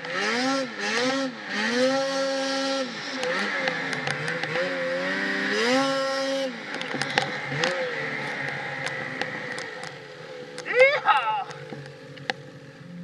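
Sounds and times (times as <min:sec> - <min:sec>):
snowmobile engine revving: 0:00.0 - 0:13.0.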